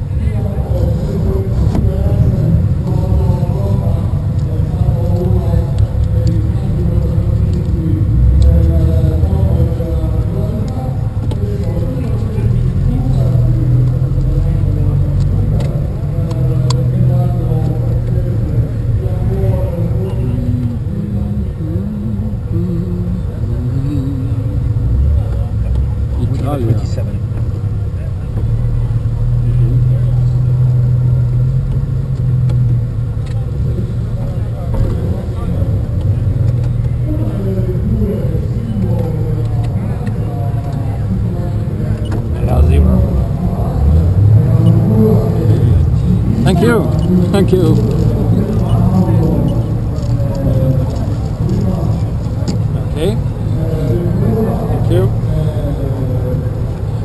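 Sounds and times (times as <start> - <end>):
people talking: 0.0 - 31.3, 33.3 - 57.0
car engine idling: 0.0 - 57.0.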